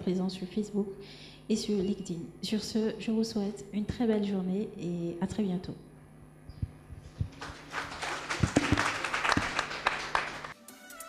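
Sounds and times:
audience applauding: 7.3 - 10.6.

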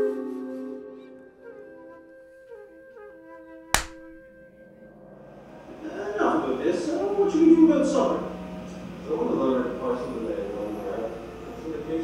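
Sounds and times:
woodwind music: 0.0 - 4.9
clapperboard clap: 3.8 - 4.2.

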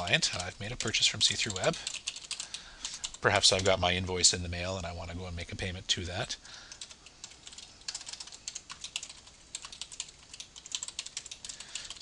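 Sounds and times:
computer keyboard typing: 0.0 - 3.9, 6.7 - 12.0.

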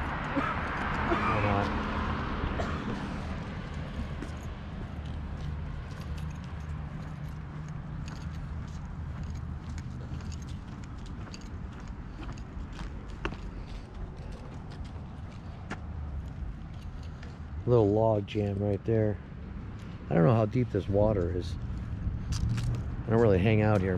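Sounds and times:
footsteps on concrete: 2.9 - 17.3.

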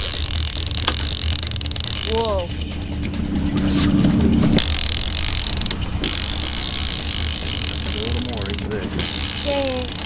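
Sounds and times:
boat engine running: 0.0 - 10.0
sea noise: 3.6 - 10.0.

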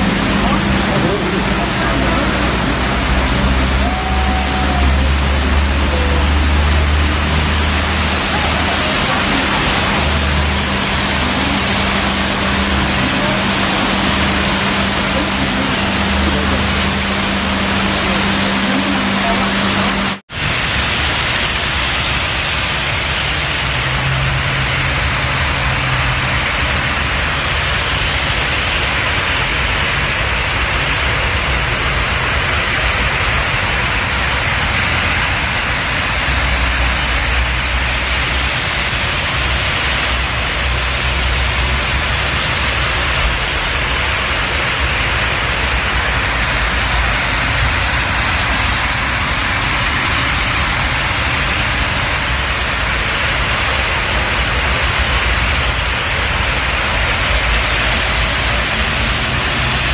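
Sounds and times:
heavy rain on a street: 0.0 - 59.9.

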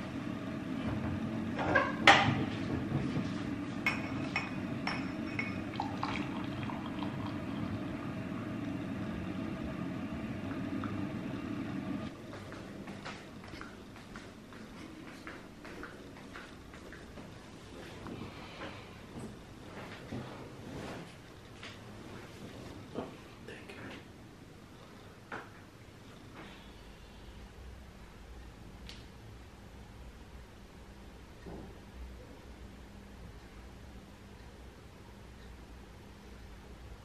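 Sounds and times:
tea pouring through strainer: 3.6 - 11.4
metal clinking on glass: 3.9 - 5.8.

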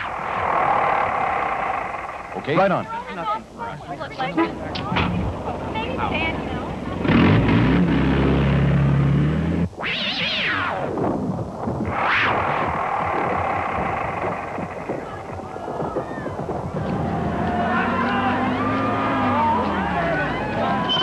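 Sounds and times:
jeep engine running: 0.0 - 9.7, 12.4 - 21.0
noisy din: 0.0 - 21.0.

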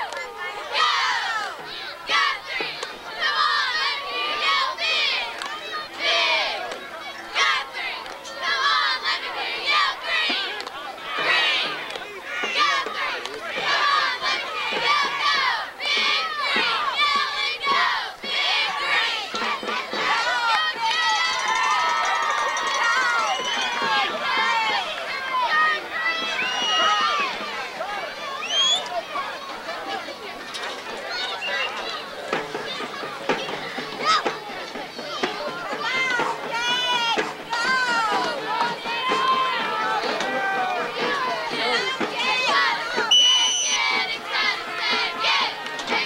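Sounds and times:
crowd shouting and cheering: 0.0 - 46.0.

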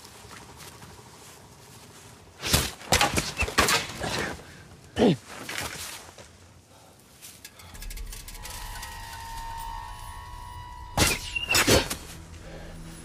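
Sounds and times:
low rumble: 7.7 - 13.0
tense held score tones: 7.7 - 13.0.

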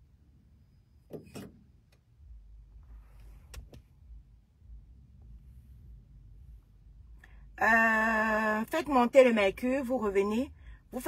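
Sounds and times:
low rumble: 1.7 - 8.1.

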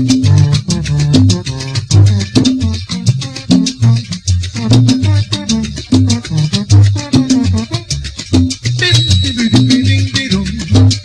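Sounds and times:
salsa band playing: 0.0 - 11.0.

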